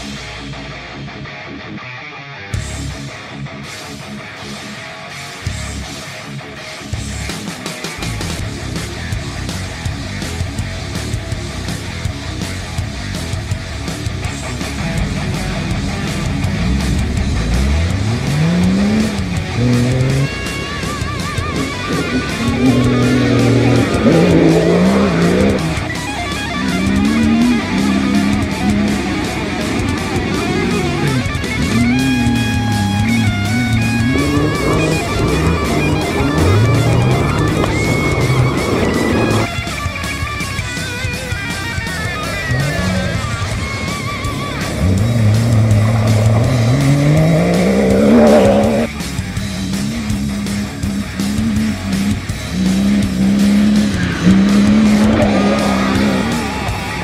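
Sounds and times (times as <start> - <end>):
background music with guitar: 0.0 - 57.0
rally car engine revving hard: 8.0 - 57.0.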